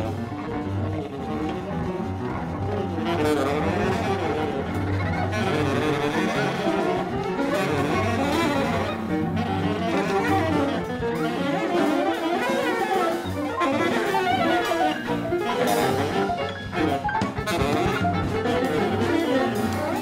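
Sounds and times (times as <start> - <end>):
drums: 0.0 - 20.0
piano: 0.0 - 20.0
saxophone: 0.0 - 20.0
guitar: 1.3 - 20.0.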